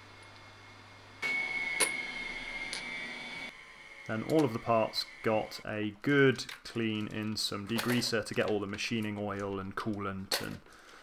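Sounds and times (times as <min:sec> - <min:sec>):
faint high whine: 0:00.0 - 0:06.0
metal parts clicking on tray: 0:06.3 - 0:10.7.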